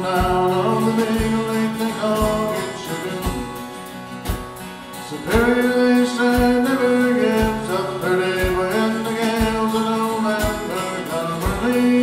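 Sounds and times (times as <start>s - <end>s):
acoustic guitars: 0.0s - 12.0s
held melody line: 0.0s - 12.0s
steady drum beat: 0.0s - 12.0s.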